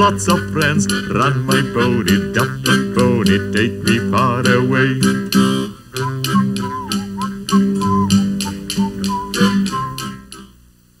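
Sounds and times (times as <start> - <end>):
acoustic guitar strummed: 0.0 - 10.6.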